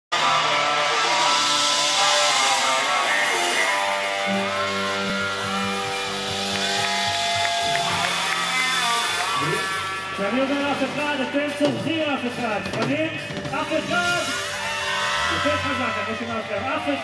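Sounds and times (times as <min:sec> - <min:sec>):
bass guitar line: 0:00.1 - 0:17.0
live band playing loud music: 0:00.1 - 0:17.0.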